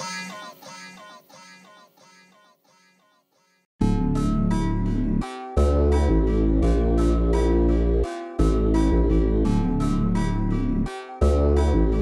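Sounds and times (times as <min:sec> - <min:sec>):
electronic pop melody: 0:03.8 - 0:12.0.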